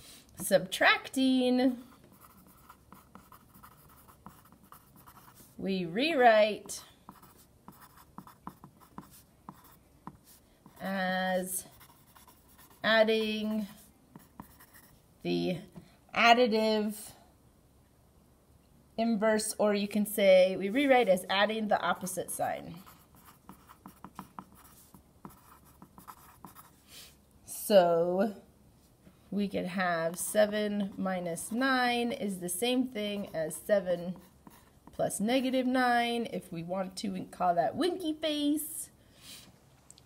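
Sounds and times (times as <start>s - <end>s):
pencil writing on paper: 2.1s - 5.6s, 7.1s - 11.0s, 11.6s - 12.9s, 13.6s - 14.9s, 22.8s - 26.8s, 34.1s - 35.0s.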